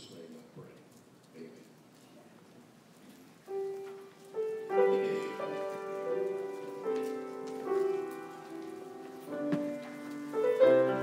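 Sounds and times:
piano chords: 0:03.5 - 0:11.0.

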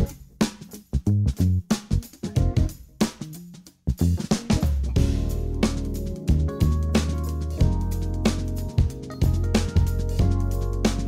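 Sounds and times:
snare and tom drum fill: 0:00.0 - 0:00.8, 0:01.7 - 0:11.0
fusion band playing: 0:00.0 - 0:11.0.

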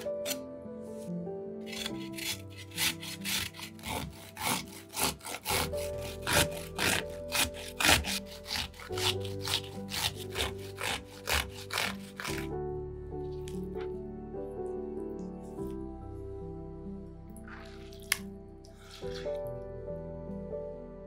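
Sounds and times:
gherkin scraping on metal grater: 0:01.7 - 0:12.5.

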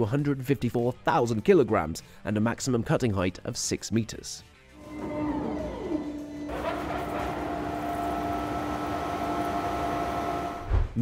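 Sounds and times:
high machine whine: 0:04.8 - 0:10.7
mining machine cutting rock: 0:04.8 - 0:10.7.

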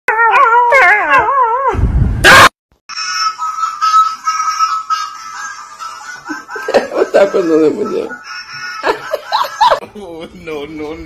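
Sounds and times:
puppy howling: 0:00.1 - 0:01.7.

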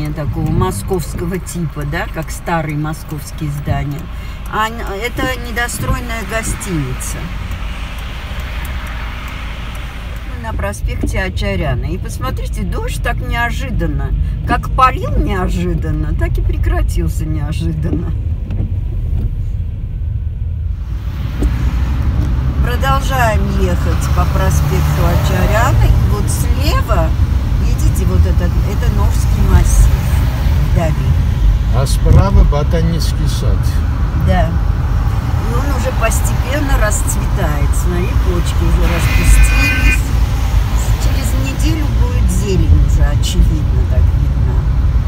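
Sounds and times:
car cabin road rumble: 0:00.0 - 0:45.0
tyre hiss on wet road: 0:07.3 - 0:10.5.

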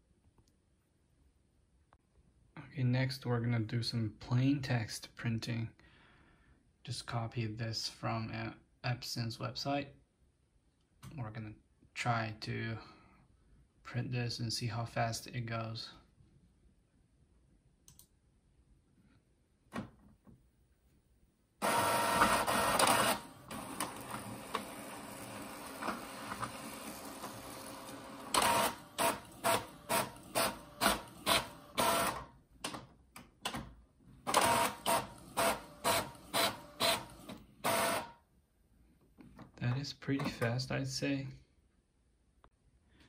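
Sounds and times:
printer whirring: 0:21.6 - 0:32.3, 0:34.2 - 0:38.2.

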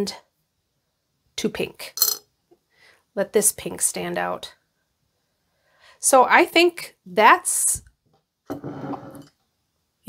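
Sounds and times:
beads sliding across wooden table: 0:08.5 - 0:09.3.

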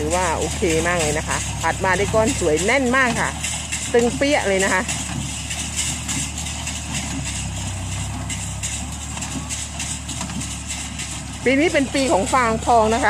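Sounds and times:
baler compressing straw: 0:00.0 - 0:13.0
tractor diesel engine running: 0:00.0 - 0:13.0.

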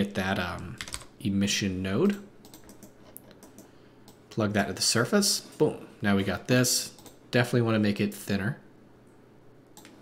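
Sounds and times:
computer keys and mouse clicks: 0:02.0 - 0:04.2, 0:06.9 - 0:07.2, 0:09.7 - 0:10.0.

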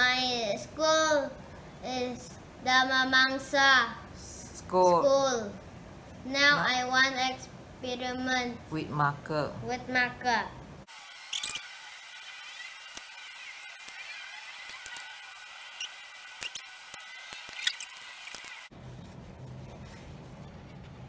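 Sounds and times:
markers squeaking on paper: 0:12.5 - 0:21.0.

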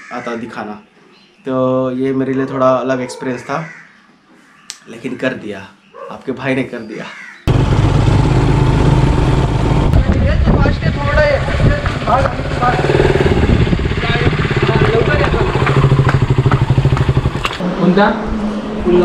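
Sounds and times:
motorcycle engine throbbing: 0:07.5 - 0:17.6
people talking: 0:09.9 - 0:13.0, 0:13.9 - 0:15.8.

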